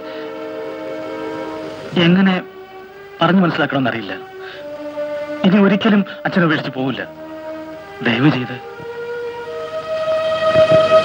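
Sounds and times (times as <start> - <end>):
film music with held notes: 0.0 - 11.0
man speaking: 1.9 - 2.5, 3.2 - 4.3, 5.4 - 7.1, 8.0 - 8.6.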